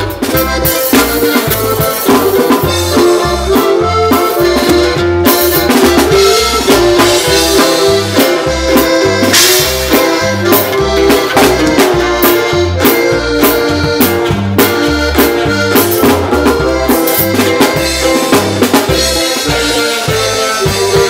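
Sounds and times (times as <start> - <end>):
live band music: 0.0 - 21.0.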